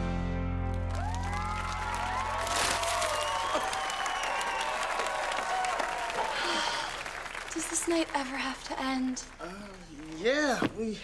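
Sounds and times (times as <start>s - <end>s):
audience clapping and cheering: 0.6s - 11.0s
audience whooping: 0.8s - 7.5s.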